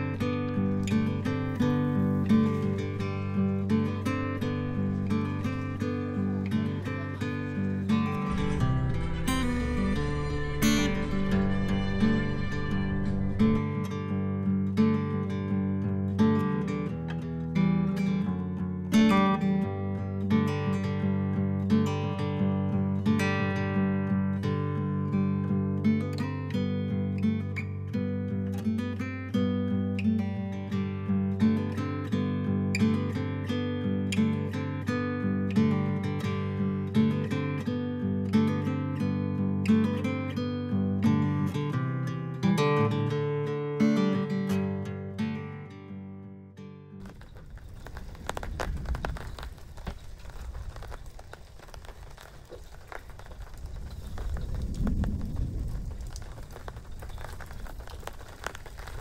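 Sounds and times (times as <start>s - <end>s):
rain falling: 0.0s - 30.0s, 47.0s - 59.0s
acoustic guitar music: 0.0s - 51.0s.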